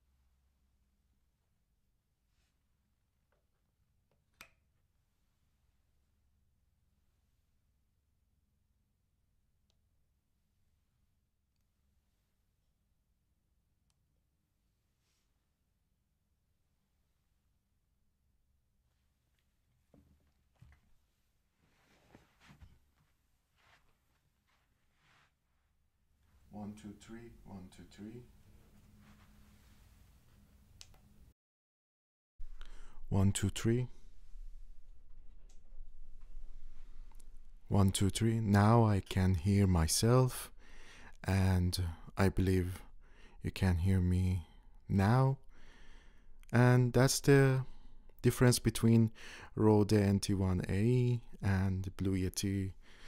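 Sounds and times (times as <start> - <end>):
faint steady hum: 32.4 - 53.0.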